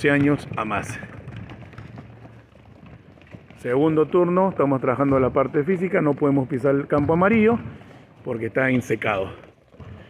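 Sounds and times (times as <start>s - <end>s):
footsteps running on concrete: 0.0s - 10.0s
outdoor background noise: 0.0s - 10.0s.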